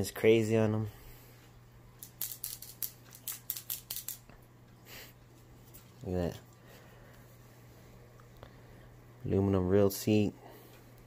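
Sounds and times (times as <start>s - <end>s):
steady low hum: 0.0s - 11.0s
fishing rod handling clicks: 2.0s - 4.3s.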